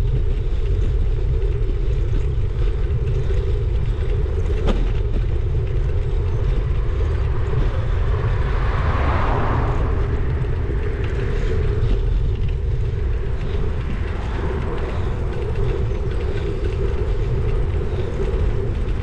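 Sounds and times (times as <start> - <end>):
bicycle tyres rolling on tarmac: 0.0 - 19.0
wind rumble on microphone: 0.0 - 19.0.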